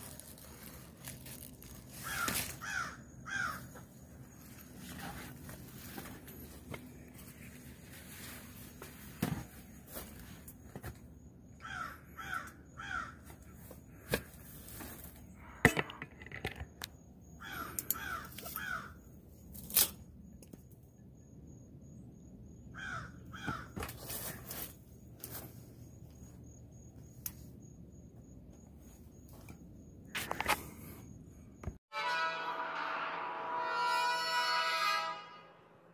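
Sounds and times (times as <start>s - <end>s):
crow cawing: 2.0s - 3.8s, 11.6s - 13.3s, 17.4s - 19.0s, 22.8s - 23.8s.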